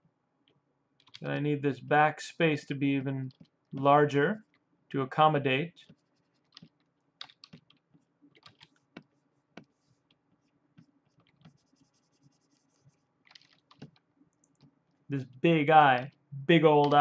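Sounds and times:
computer keyboard clicks: 1.0s - 1.2s, 6.4s - 7.8s, 8.4s - 8.8s, 13.3s - 14.7s.

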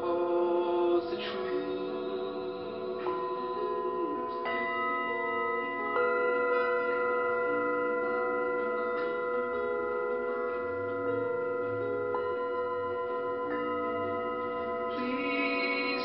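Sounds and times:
singing bowls ringing: 0.0s - 16.0s.

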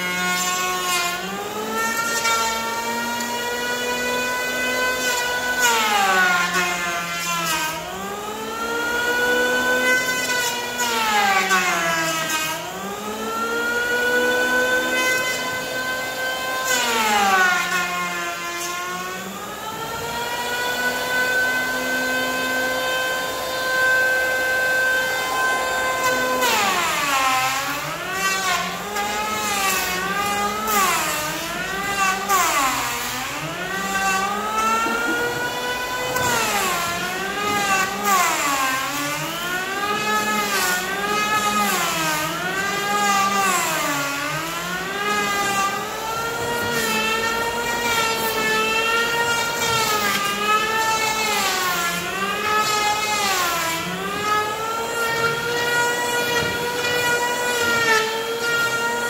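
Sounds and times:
electric hand planer cutting wood: 0.0s - 59.0s.

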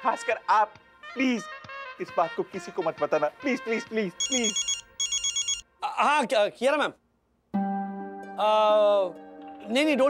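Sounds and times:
telephone ringing: 4.2s - 5.6s.

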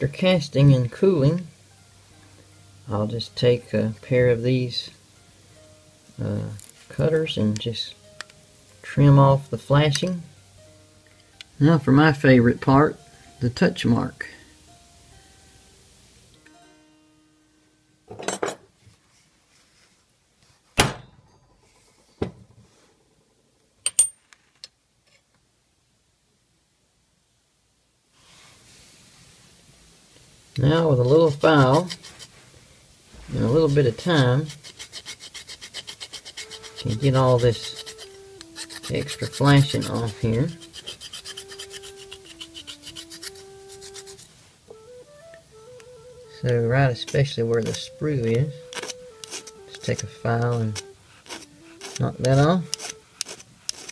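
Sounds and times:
metal punch striking: 20.8s - 21.5s
bright metal clinks: 23.8s - 24.2s
hand file rasping on metal: 31.3s - 32.3s, 33.3s - 44.3s, 47.0s - 47.9s, 48.6s - 53.9s.

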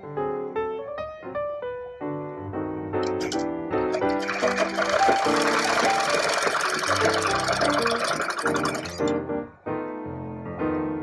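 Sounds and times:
background piano music: 0.0s - 11.0s
sewing machine stitching: 3.0s - 9.1s.

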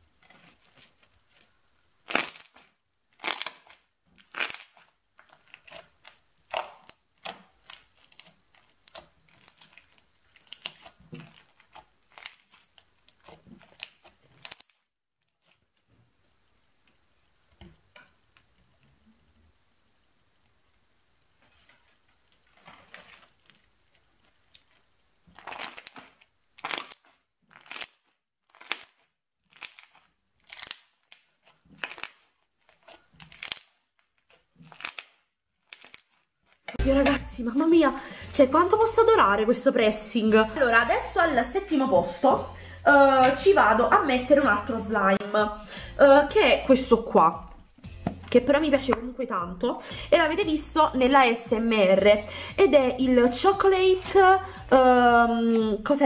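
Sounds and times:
crunchy slime crackling: 0.0s - 15.8s, 22.4s - 42.3s, 50.6s - 56.0s.

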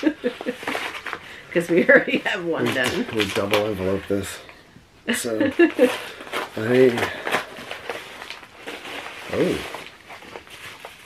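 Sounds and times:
paper envelope rustling: 0.0s - 4.5s, 5.5s - 11.0s.

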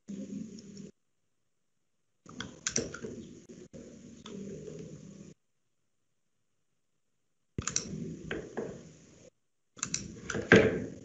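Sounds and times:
keyboard typing clicks: 7.6s - 8.0s.

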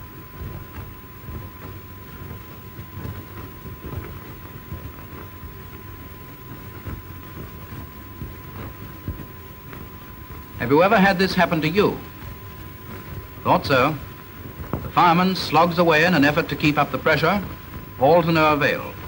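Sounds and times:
low rumble and hiss: 0.0s - 19.0s
irregular crackles: 0.2s - 19.0s.

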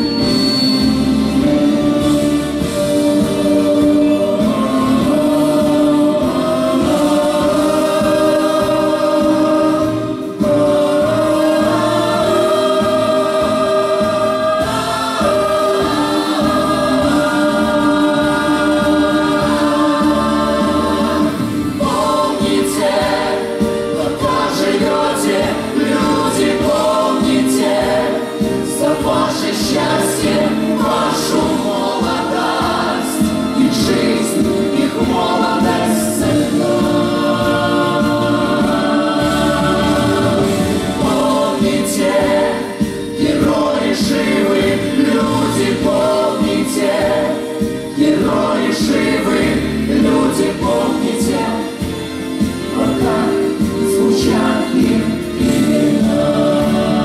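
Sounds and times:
mixed choir singing in harmony: 0.0s - 57.0s.

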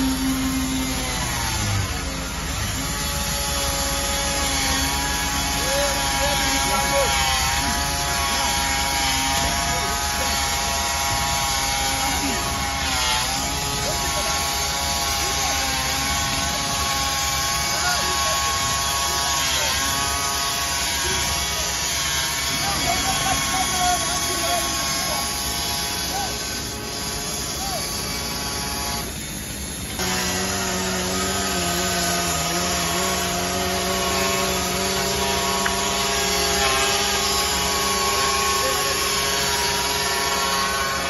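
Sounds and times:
bandsaw mill sawing log: 0.0s - 41.0s.

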